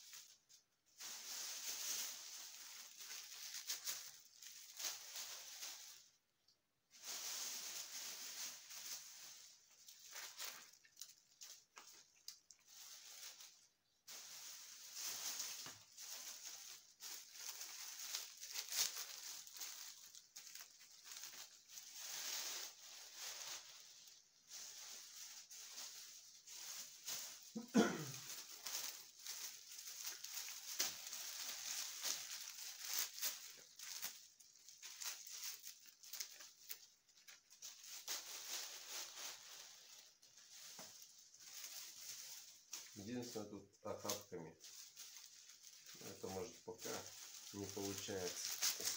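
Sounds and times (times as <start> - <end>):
branches rustling: 0.0 - 48.9.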